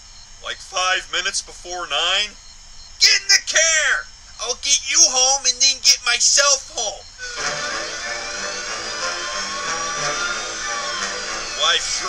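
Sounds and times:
cartoon car engine: 0:06.2 - 0:12.0.

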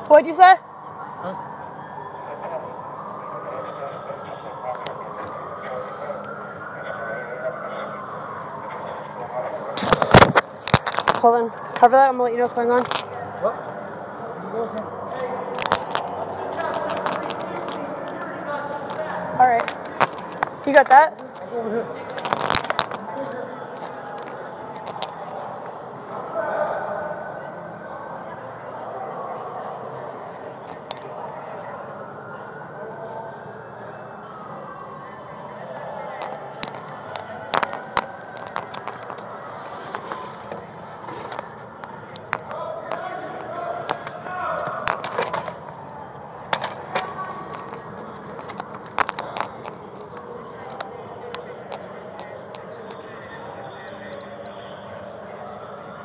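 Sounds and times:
muffled voices: 0:00.0 - 0:56.0
camera rubbing on clothing: 0:37.0 - 0:41.7.

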